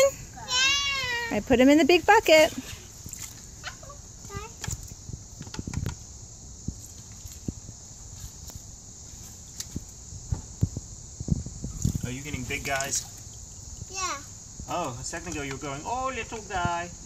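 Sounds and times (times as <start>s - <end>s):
small child's voice: 0.0s - 1.4s, 3.6s - 4.6s, 13.9s - 14.3s.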